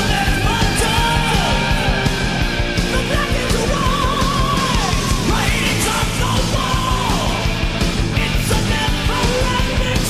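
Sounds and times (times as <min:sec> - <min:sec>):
heavy metal music: 0:00.0 - 0:10.0.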